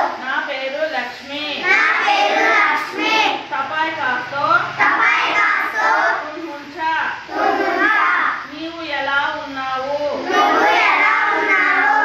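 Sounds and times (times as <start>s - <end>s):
children reciting in chorus: 0.0s - 0.2s, 1.6s - 3.5s, 4.8s - 6.4s, 7.2s - 8.5s, 10.2s - 12.0s.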